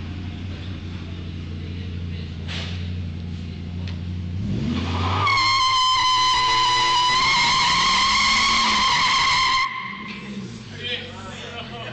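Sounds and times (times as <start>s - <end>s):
car engine revving: 0.0s - 11.9s
tyres squealing: 4.8s - 10.8s.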